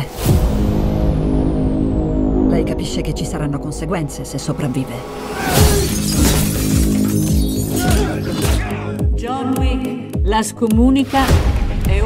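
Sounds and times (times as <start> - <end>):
dramatic trailer music: 0.0 - 12.0
glass shattering: 5.5 - 8.6.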